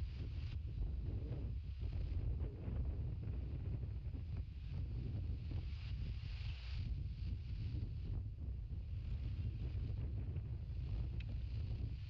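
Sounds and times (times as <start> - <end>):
wind buffeting microphone: 0.0 - 12.0
faint tick: 11.1 - 11.4.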